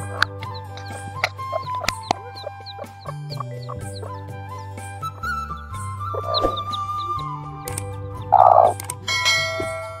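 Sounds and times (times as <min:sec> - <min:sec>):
hen clucking calls: 0:00.0 - 0:08.9
chicks peeping: 0:00.0 - 0:09.0
background music: 0:00.0 - 0:10.0.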